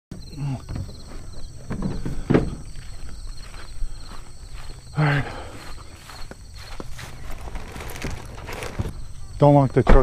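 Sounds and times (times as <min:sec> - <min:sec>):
footsteps on ground: 0:02.6 - 0:09.1
low rumble of handling noise: 0:06.7 - 0:09.3.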